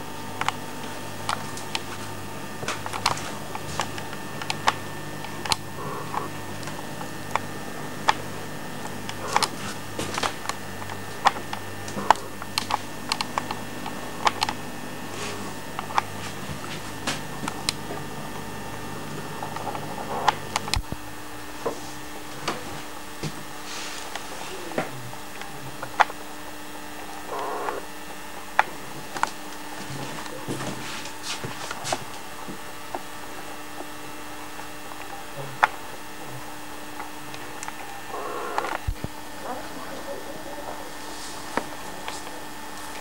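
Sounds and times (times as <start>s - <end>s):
faint steady hum: 0.0s - 43.0s
small ticks: 0.2s - 14.6s, 36.9s - 39.1s.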